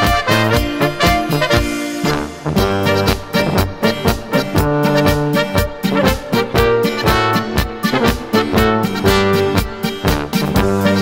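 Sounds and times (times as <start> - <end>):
folk band playing a march: 0.0 - 11.0.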